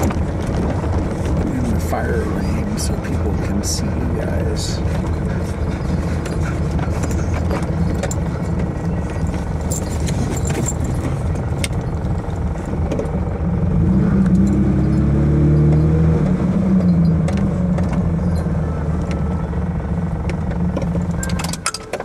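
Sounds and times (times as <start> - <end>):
car engine hum: 0.0 - 22.0
light clicks and rattles: 4.8 - 13.2.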